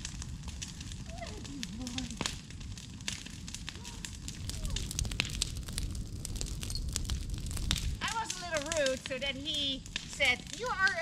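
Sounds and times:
burning branches crackling: 0.0s - 11.0s
steady low rumble: 0.0s - 11.0s.

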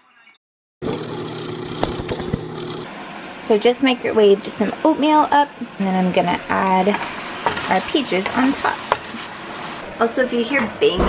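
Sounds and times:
food sizzling in frying pan: 6.3s - 9.9s.

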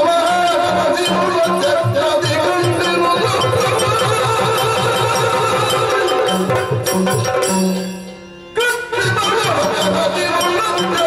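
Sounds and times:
drums in even rhythm: 0.0s - 11.0s.

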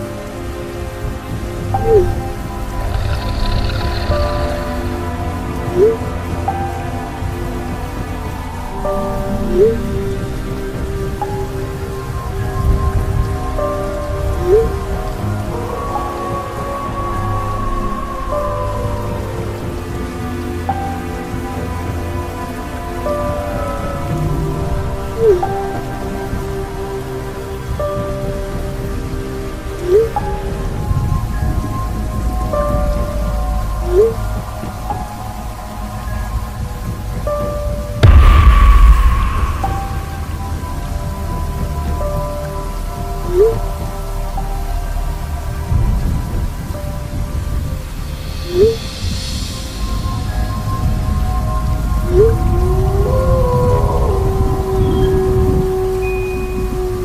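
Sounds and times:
low rumble of thunder: 0.0s - 44.6s, 45.2s - 57.0s
slow music of held notes: 0.0s - 57.0s
steady rain: 0.0s - 57.0s.

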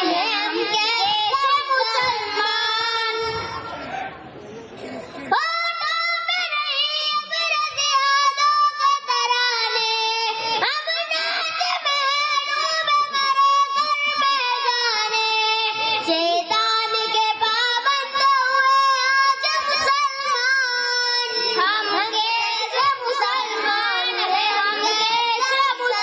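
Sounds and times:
child singing unaccompanied: 0.0s - 3.7s, 5.3s - 26.0s.

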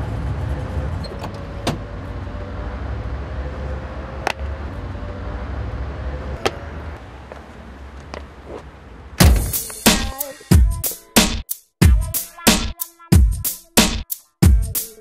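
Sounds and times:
vehicle engine rumble: 0.0s - 9.9s.

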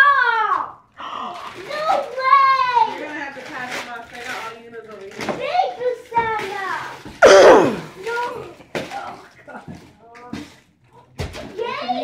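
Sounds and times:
voices in a small room: 0.0s - 12.0s.

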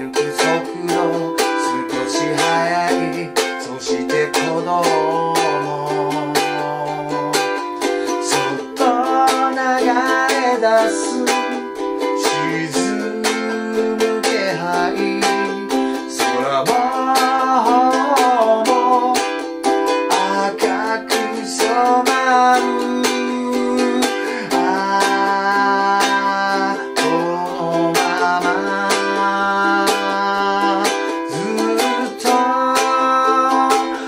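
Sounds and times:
man singing: 0.0s - 34.0s
ukulele strumming: 0.0s - 34.0s.

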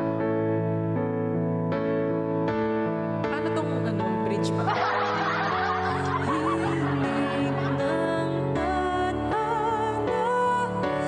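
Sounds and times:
keyboard chords: 0.0s - 11.0s
woman singing: 3.3s - 4.8s, 6.0s - 11.0s.

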